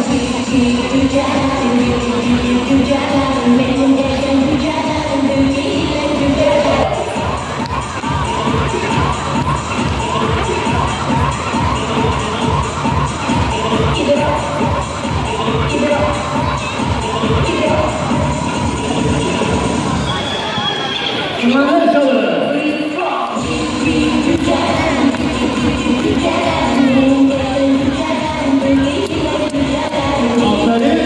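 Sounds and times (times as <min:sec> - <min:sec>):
children shouting and cheering: 0:23.4 - 0:30.7.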